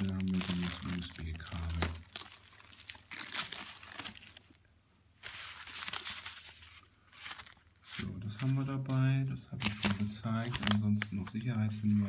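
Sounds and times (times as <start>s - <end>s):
plastic bag crinkling: 0.0s - 4.6s, 9.5s - 11.4s.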